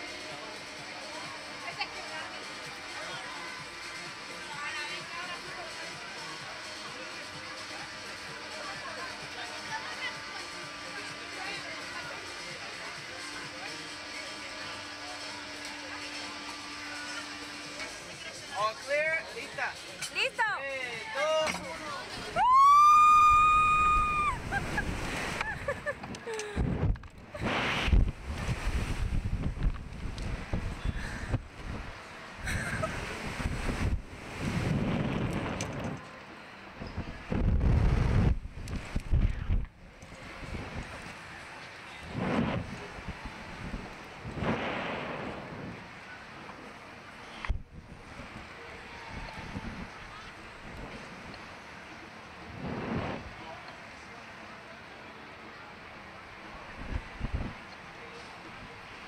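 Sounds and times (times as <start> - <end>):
riders laughing and yelling: 22.4 - 26.6, 32.4 - 33.2
wind buffeting microphone: 26.6 - 32.0, 32.8 - 36.0, 36.8 - 39.7.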